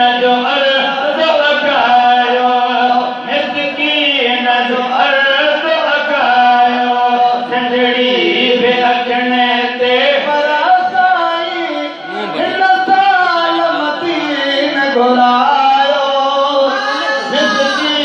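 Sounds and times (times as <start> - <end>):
man chanting into a microphone: 0.0 - 18.0.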